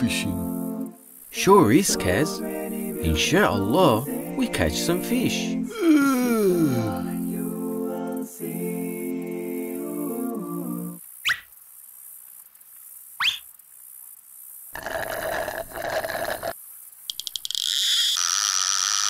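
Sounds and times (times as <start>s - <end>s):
music cue: 0.0s - 11.0s
rising whistles: 11.2s - 11.5s, 13.2s - 13.5s
rapid clicks of fishing reel: 14.8s - 19.0s.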